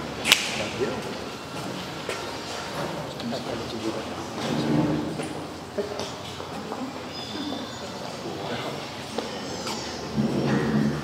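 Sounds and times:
voices murmuring: 0.0s - 11.0s
sharp snap: 0.2s - 0.7s.

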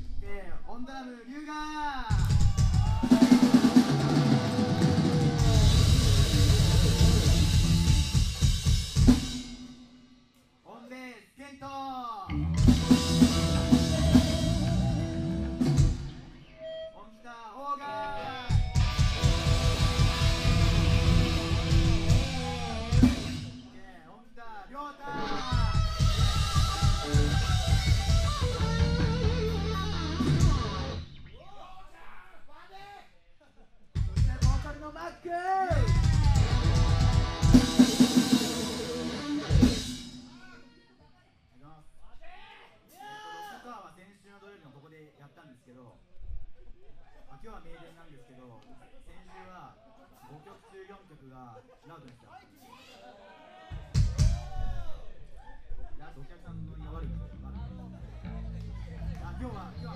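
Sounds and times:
live rock band playing: 2.6s - 9.7s, 12.3s - 16.3s, 18.4s - 23.6s, 25.2s - 31.1s, 35.8s - 40.3s.

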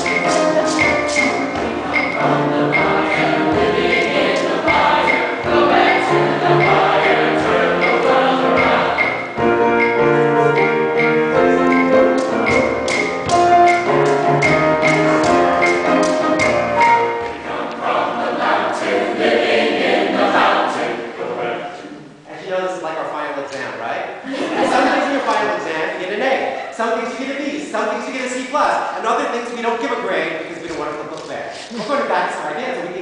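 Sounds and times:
choir singing in harmony: 0.0s - 22.1s.

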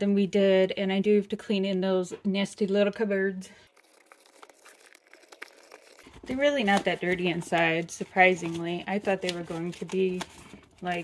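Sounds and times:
baby wipe rustling in cupboards: 6.1s - 11.0s.

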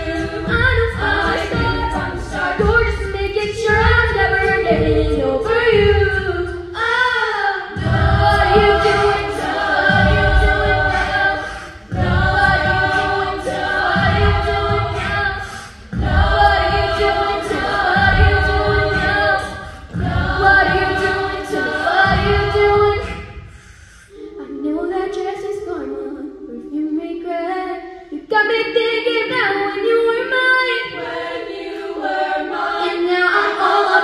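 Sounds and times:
a cappella group singing: 0.0s - 34.0s.

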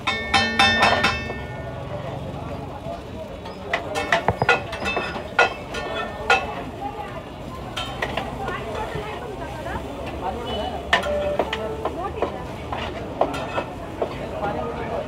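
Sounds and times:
metal spatulas scraping a pan: 12.6s - 13.8s.

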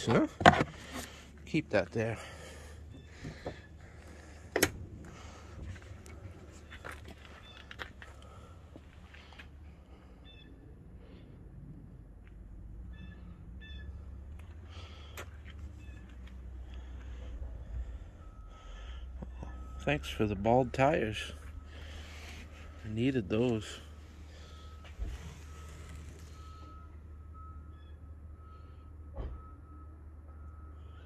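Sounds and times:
steady low rumble: 0.0s - 27.6s
truck door shutting: 4.5s - 4.8s.

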